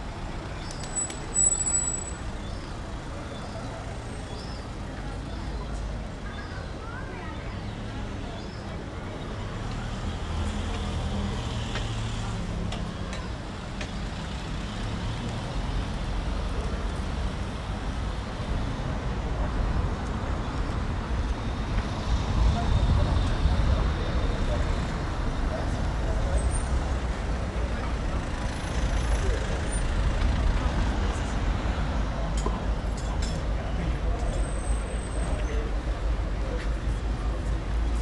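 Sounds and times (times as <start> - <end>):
low traffic rumble: 0.0 - 38.0
voices of passers-by: 0.0 - 38.0.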